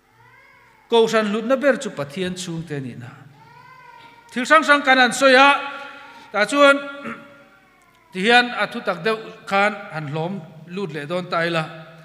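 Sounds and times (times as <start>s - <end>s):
man speaking over public address: 0.9s - 3.3s, 4.3s - 7.3s, 8.1s - 12.0s.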